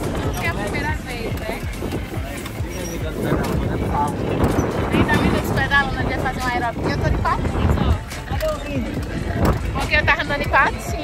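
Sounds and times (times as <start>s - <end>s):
noisy outdoor background: 0.0s - 11.0s
people talking and laughing: 0.0s - 11.0s.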